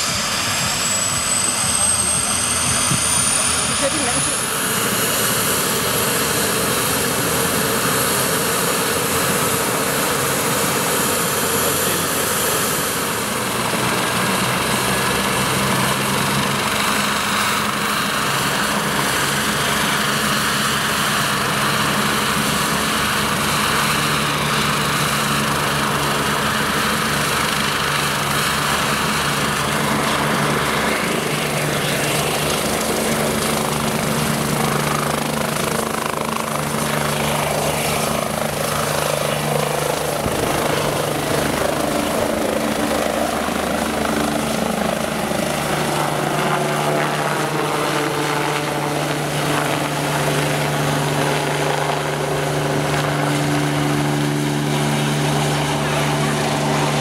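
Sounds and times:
helicopter rotor beating: 0.0s - 57.0s
turbine whine: 0.0s - 57.0s.

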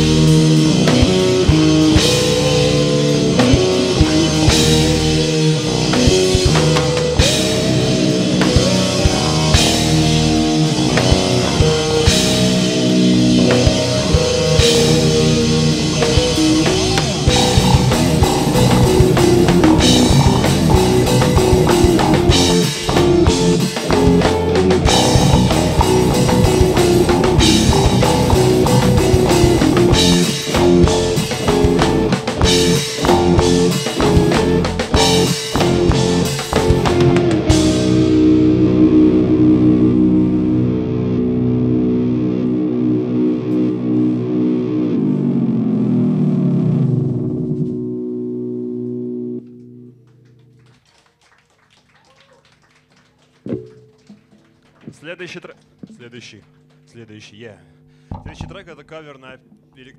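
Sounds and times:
drum kit: 0.0s - 40.9s, 58.1s - 58.9s
keyboard chords: 0.0s - 50.6s, 58.1s - 59.9s
electric guitar: 0.0s - 51.0s.

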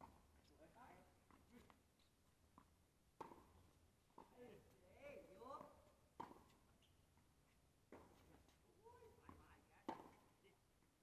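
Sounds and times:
tennis ball struck by racket: 2.6s - 4.4s, 5.6s - 6.6s, 9.3s - 10.3s.

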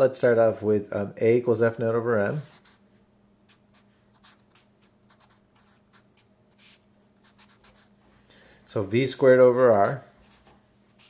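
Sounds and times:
marker scratching on paper: 2.3s - 2.8s, 3.5s - 7.9s, 9.8s - 11.0s.

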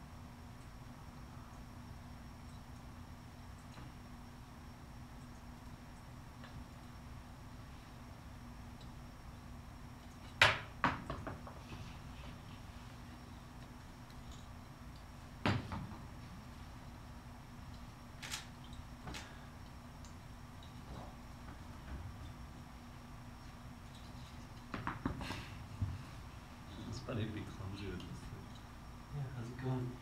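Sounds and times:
faint electrical hum: 0.0s - 30.0s.

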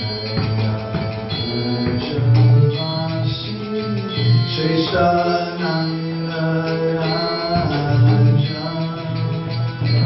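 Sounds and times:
man singing devotional song: 1.3s - 10.0s.

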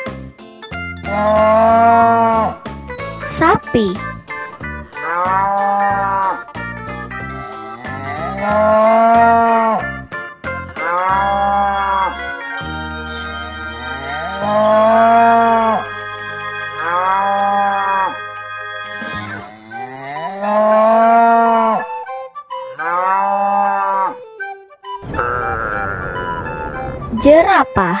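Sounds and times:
light background music: 0.0s - 28.0s
cattle mooing: 1.2s - 2.4s, 7.4s - 9.8s, 10.8s - 12.1s, 14.2s - 15.8s, 16.8s - 18.2s, 19.4s - 21.9s, 25.1s - 27.0s.

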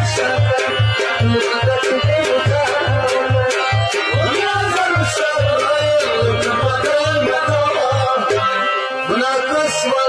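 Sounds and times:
low pulsing beat: 0.0s - 8.4s
electronic keyboard: 0.0s - 10.0s
man singing ornamented folk song: 0.0s - 10.0s.

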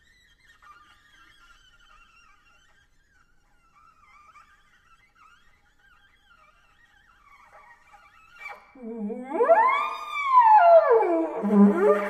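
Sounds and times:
shell horn whistling tones: 8.8s - 12.0s.

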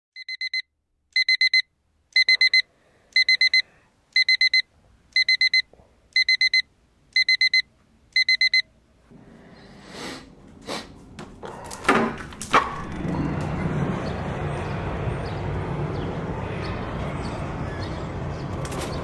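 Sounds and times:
smartphone alarm beeping: 0.2s - 2.6s, 3.2s - 8.7s.

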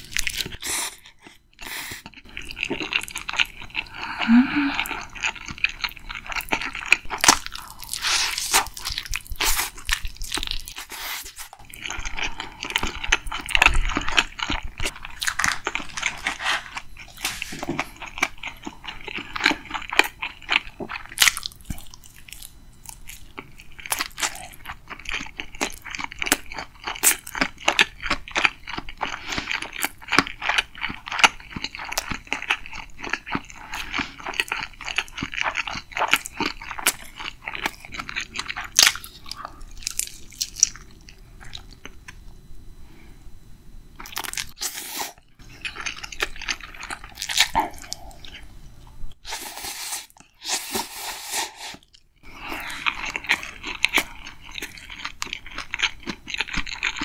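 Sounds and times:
chewing crispy fried chicken: 0.0s - 42.2s, 45.4s - 48.5s, 50.1s - 57.0s.

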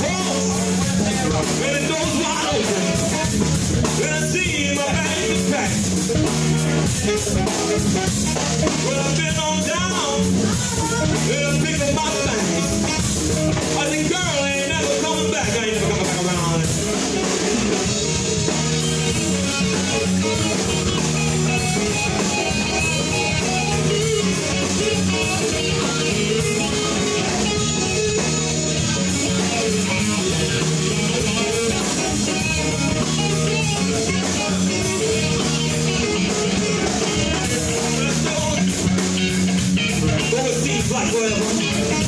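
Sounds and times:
drum kit beat: 0.0s - 42.0s
electric guitar: 0.0s - 42.0s.

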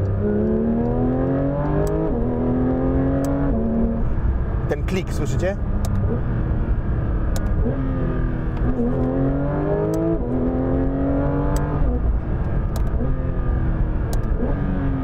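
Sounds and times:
car engine accelerating hard: 0.0s - 15.0s
shift paddle clicks: 7.3s - 7.6s.

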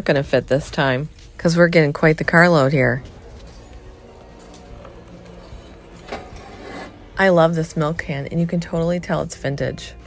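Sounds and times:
quiet background music: 0.0s - 10.0s
metal can scraping on shelf: 6.0s - 7.0s.

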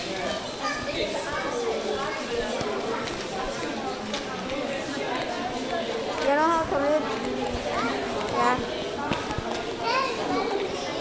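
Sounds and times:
children's voices: 0.0s - 11.0s
shopping mall hubbub: 0.0s - 11.0s.

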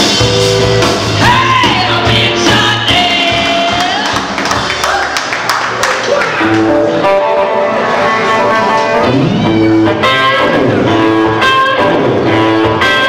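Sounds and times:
sustained instrumental lead notes: 0.0s - 3.4s, 6.4s - 13.0s
drums and cymbal hits: 0.0s - 4.8s
woman singing: 1.2s - 4.3s.

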